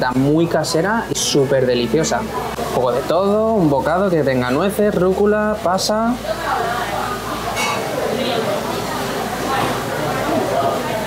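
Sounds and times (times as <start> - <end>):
restaurant diners chatter: 0.0 - 11.0.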